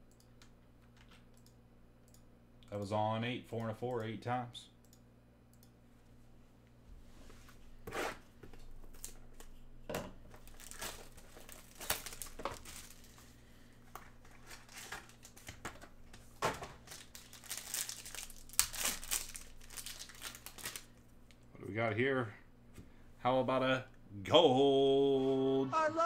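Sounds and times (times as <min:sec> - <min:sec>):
foil wrapper crinkling and tearing: 0:10.3 - 0:15.6, 0:16.8 - 0:21.0.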